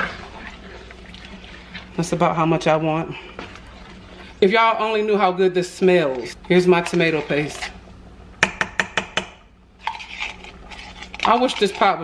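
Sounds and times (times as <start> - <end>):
utensil scraping metal can: 9.8 - 12.0.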